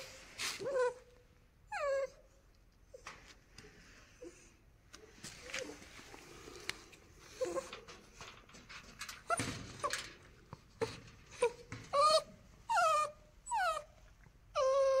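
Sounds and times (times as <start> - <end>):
puppy whimpering and whining: 0.0 - 3.1, 10.8 - 15.0.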